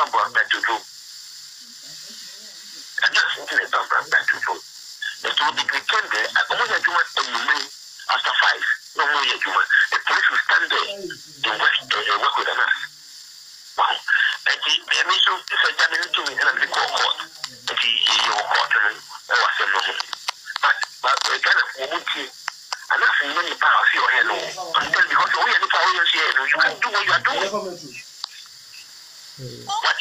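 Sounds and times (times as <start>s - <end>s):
man talking: 0.0s - 0.8s, 2.2s - 12.9s, 13.8s - 28.1s, 29.4s - 30.0s.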